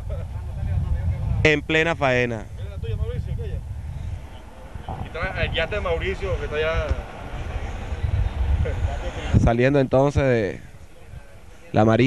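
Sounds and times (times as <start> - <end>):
boat motor rumble: 0.0 - 9.4
wind on microphone: 0.0 - 12.0
man talking: 4.9 - 7.4, 11.7 - 12.0.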